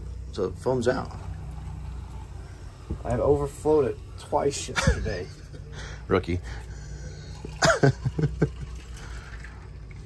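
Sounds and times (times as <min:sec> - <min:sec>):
sparkling wine pouring: 0:00.0 - 0:10.0
foam fizzing: 0:00.3 - 0:10.0.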